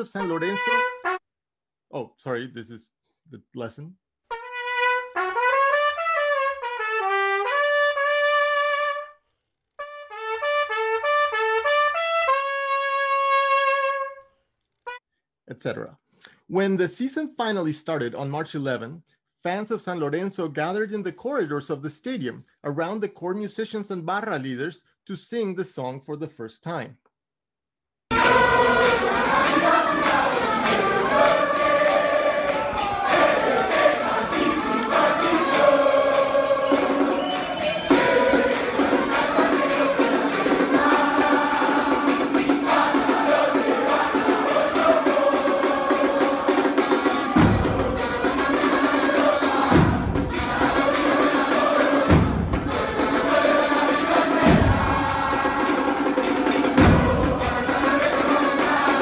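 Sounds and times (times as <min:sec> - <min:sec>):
brass and drum band: 0:00.0 - 0:01.2, 0:04.3 - 0:09.1, 0:09.8 - 0:14.2, 0:28.1 - 0:59.0
crowd chanting: 0:28.1 - 0:59.0
bass drum thumps: 0:47.4 - 0:48.0, 0:49.7 - 0:50.6, 0:54.4 - 0:55.1, 0:56.7 - 0:57.6.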